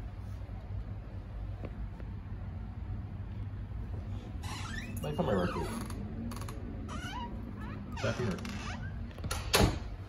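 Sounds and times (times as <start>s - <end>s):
door hinge squeaking: 4.4s - 9.7s.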